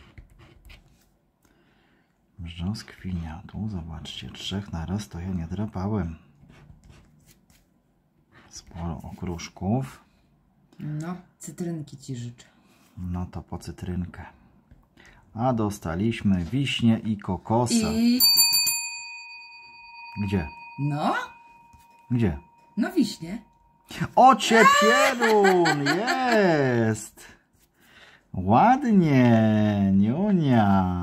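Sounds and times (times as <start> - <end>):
metal hand bell ringing: 17.7 - 23.5.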